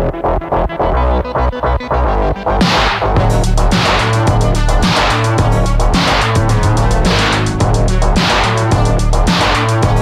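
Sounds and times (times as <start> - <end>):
synthesizer music with beat: 0.0 - 10.0.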